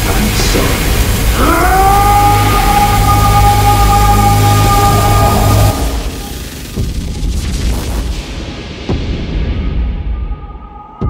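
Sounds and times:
deep bass drone: 0.0s - 10.6s.

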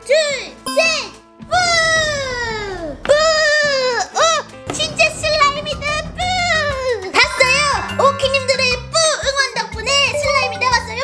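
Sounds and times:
cheerful background music: 0.0s - 11.0s.

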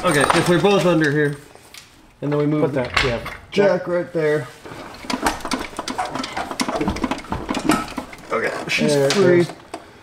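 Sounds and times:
metallic clicks and clatter: 5.0s - 9.8s.

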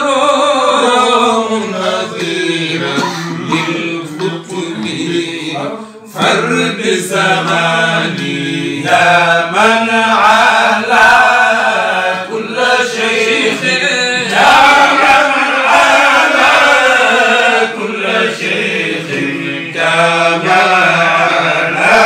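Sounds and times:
men chanting a prayer: 0.0s - 22.0s.

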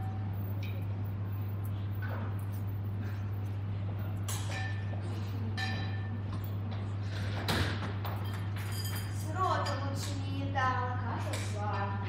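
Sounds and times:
low electrical hum: 0.0s - 12.0s
clink: 4.3s - 5.0s, 5.6s - 6.2s.

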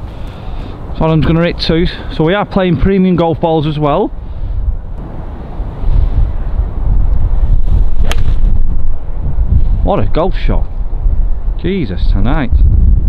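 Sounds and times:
wind rumbling on microphone: 0.0s - 13.0s
golf club striking ball: 7.9s - 8.8s.

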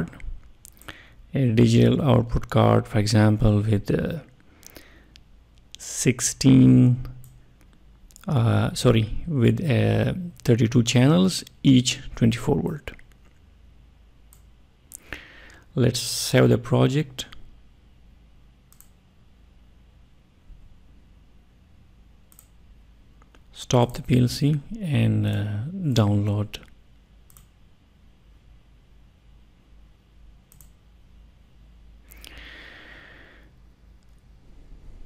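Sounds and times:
low steady hum: 0.0s - 35.0s
computer mouse clicks: 14.3s - 15.0s, 18.7s - 19.0s, 22.3s - 22.6s, 27.2s - 27.6s, 30.5s - 30.8s.

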